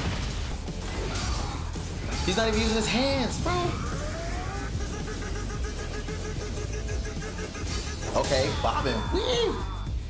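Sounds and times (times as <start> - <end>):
pulsing machine-like hum: 3.7 - 8.4.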